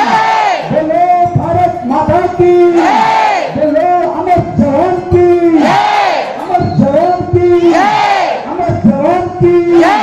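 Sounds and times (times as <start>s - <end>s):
group chanting loudly: 0.0s - 0.7s, 2.7s - 3.6s, 5.5s - 6.5s, 7.6s - 8.5s, 9.7s - 10.0s.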